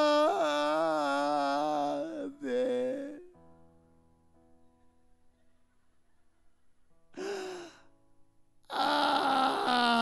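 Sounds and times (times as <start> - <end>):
man crying ah into microphone: 0.0 - 3.3, 8.7 - 10.0
faint keyboard chord: 2.4 - 7.2.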